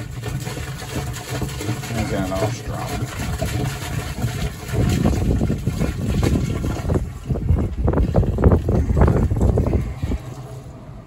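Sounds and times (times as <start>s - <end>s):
liquid pouring in gulps: 0.0s - 10.7s.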